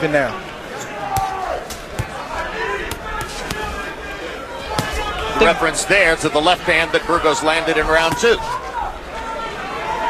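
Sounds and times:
crowd murmuring: 0.0 - 10.0
punches thudding: 1.0 - 4.0, 4.6 - 5.4, 7.9 - 8.5.

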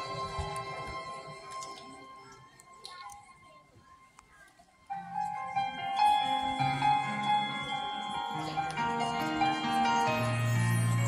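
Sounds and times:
symphony orchestra playing: 5.0 - 11.0.

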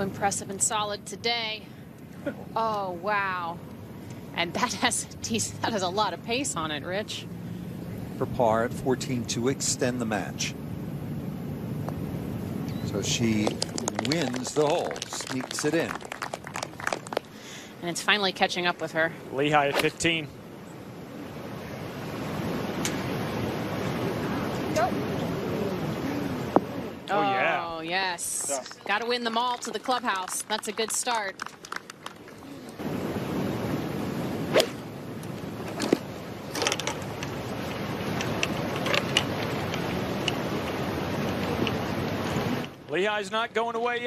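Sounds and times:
golf club hitting ball: 34.5 - 34.8.

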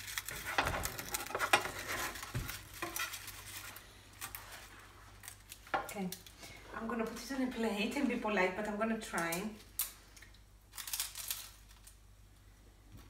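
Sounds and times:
knife crackling through crisp pastry: 0.0 - 6.3.

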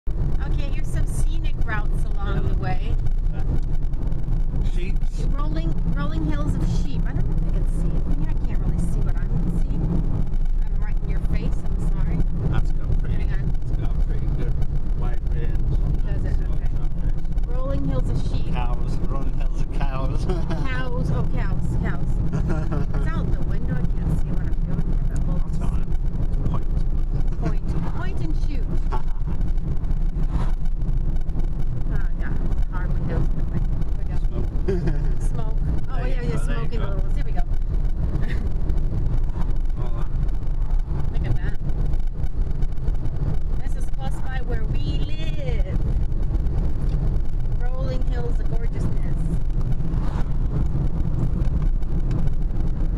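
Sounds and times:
road and engine rumble in car: 0.0 - 52.9
quiet talk: 4.6 - 9.8, 10.6 - 25.9, 31.9 - 37.5, 39.8 - 40.1.

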